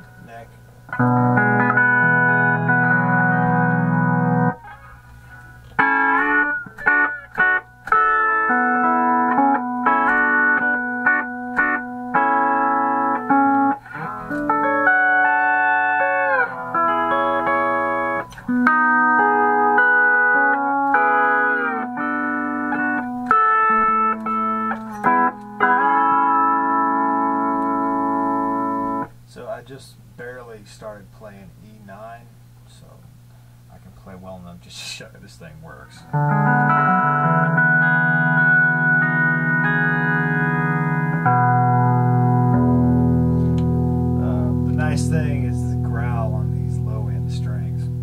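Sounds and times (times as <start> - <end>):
pedal steel guitar chords: 0.0 - 29.6, 35.7 - 48.0.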